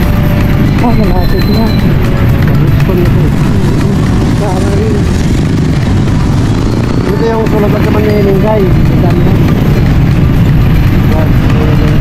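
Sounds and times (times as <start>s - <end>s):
road noise: 0.0s - 12.0s
scooter engine: 0.0s - 12.0s.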